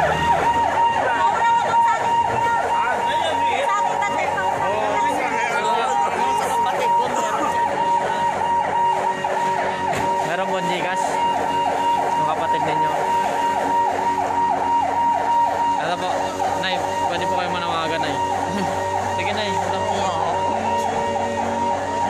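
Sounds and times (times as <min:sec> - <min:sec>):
fire truck siren yelping: 0:00.0 - 0:22.0
steady high tone: 0:00.0 - 0:22.0.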